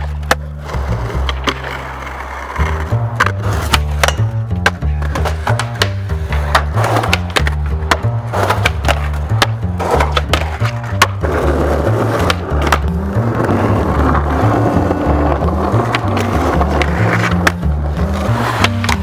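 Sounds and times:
skateboard clacks: 0.0s - 19.0s
skateboard wheels rolling on concrete: 0.0s - 19.0s
hip-hop beat: 0.1s - 19.0s.

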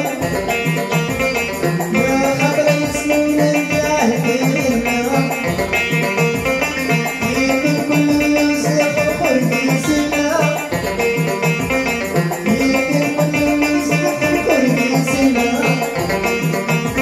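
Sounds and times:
banjo picking: 0.0s - 17.0s
keyboard accompaniment: 0.0s - 17.0s
steady bass beat: 0.0s - 17.0s.

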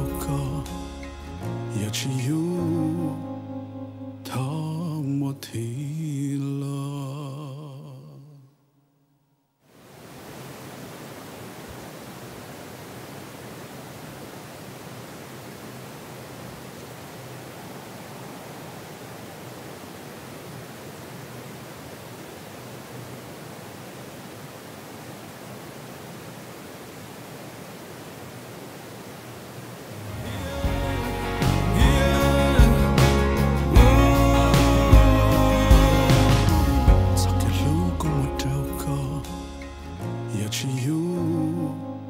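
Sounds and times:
music: 0.0s - 6.7s, 30.1s - 42.0s.

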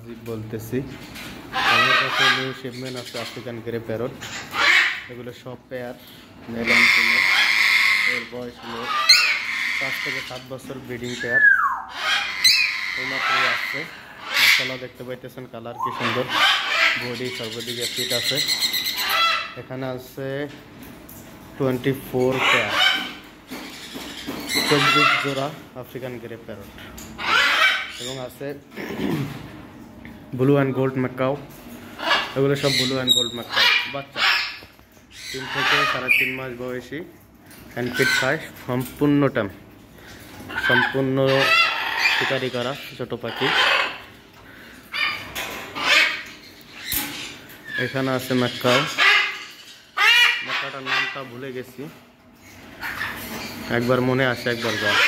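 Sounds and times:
parrots calling: 1.1s - 19.9s, 22.0s - 29.5s, 31.6s - 38.7s, 39.9s - 55.0s
macaws squawking: 1.5s - 5.4s, 6.0s - 19.7s, 22.2s - 25.6s, 27.2s - 28.3s, 31.9s - 36.5s, 40.4s - 55.0s.

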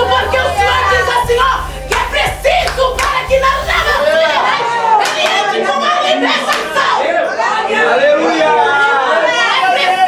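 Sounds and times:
congregation praying aloud: 0.0s - 10.0s.

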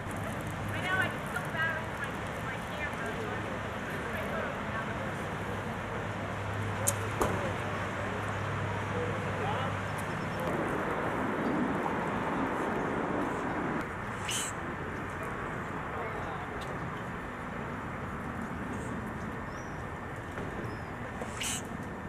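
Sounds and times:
outdoor background rumble: 0.0s - 22.0s.

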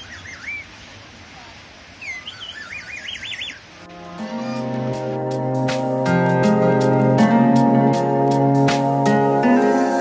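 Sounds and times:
music: 3.8s - 10.0s.

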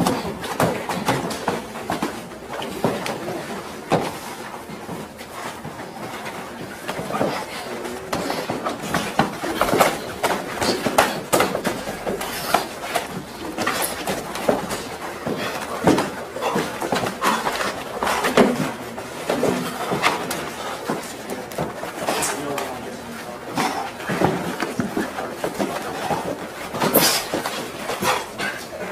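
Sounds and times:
men's voices: 5.5s - 28.9s.

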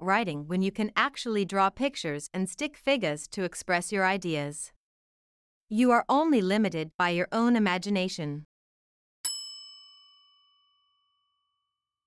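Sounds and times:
bell-like chime: 9.2s - 11.9s.

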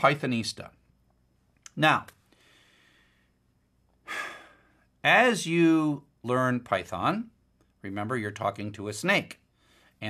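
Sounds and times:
person breathing in: 2.3s - 3.4s, 4.0s - 4.9s.

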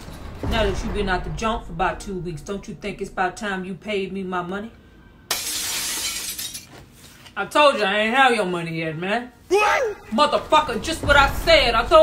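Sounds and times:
shattering crash: 5.3s - 6.7s.

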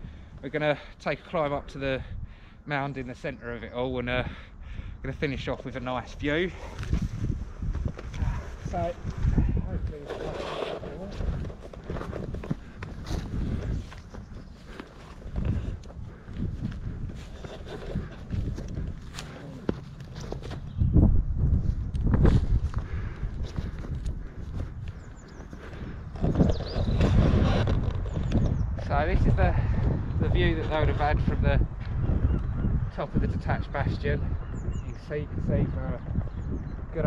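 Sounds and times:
wind buffeting microphone: 0.0s - 37.0s
grass rustling: 6.4s - 20.8s
footsteps through long grass: 12.1s - 20.7s.

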